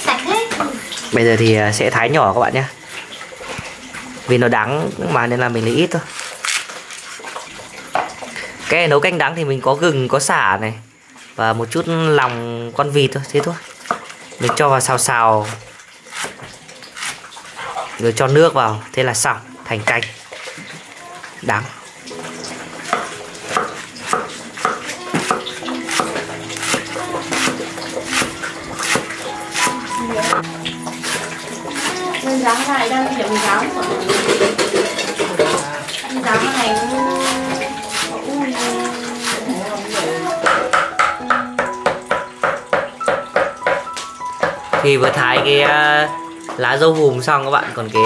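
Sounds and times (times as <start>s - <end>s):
background music: 22.1s - 48.0s
cleaver chopping on wooden board: 22.9s - 27.6s, 28.2s - 30.4s.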